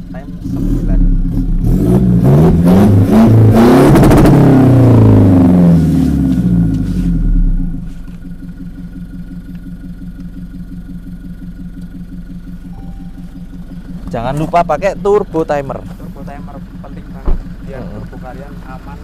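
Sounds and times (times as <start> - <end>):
diesel engine revving and idling: 0.0 - 19.0.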